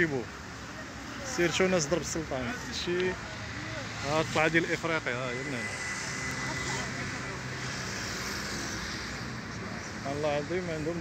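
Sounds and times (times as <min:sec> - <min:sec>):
road traffic hum: 0:00.0 - 0:11.0.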